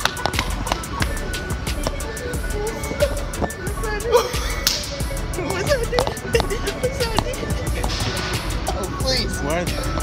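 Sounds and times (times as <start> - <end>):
background music with quick beat: 0.0 - 10.0.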